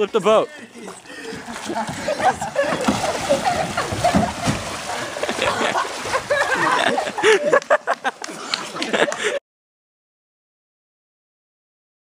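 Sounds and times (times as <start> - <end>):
voices: 0.0 - 7.6
water splashing and sloshing: 0.0 - 9.4
laughter: 1.3 - 9.4.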